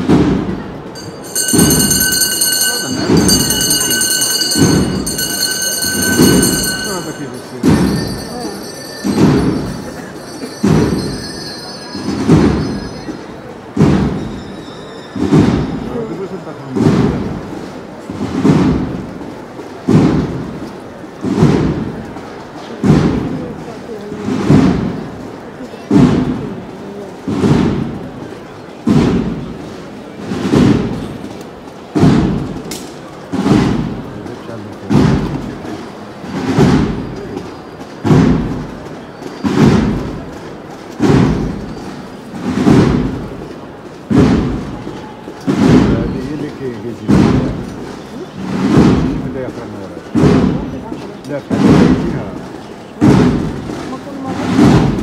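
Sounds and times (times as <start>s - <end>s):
slow heavy drum beat: 0.0s - 14.4s, 16.8s - 25.2s, 25.9s - 28.2s, 28.8s - 31.3s, 31.9s - 32.7s, 33.3s - 34.2s, 34.8s - 37.4s, 38.0s - 44.9s, 45.5s - 46.0s, 47.1s - 49.4s, 50.1s - 50.9s, 53.0s - 55.0s.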